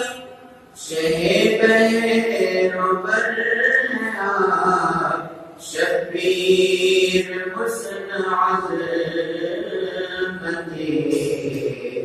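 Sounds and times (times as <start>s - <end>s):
man chanting unaccompanied: 0.0s - 12.0s.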